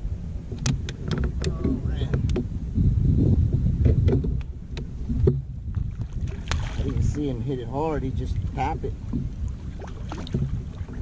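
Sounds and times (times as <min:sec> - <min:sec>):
wind and water rumble: 0:00.0 - 0:11.0.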